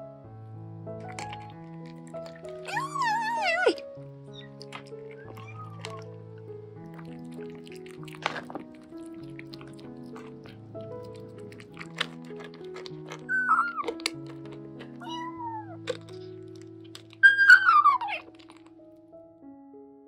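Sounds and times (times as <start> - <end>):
gentle piano music: 0.0 - 20.0
kitten meowing: 2.4 - 6.2, 13.2 - 14.0, 14.9 - 16.2, 17.2 - 18.3.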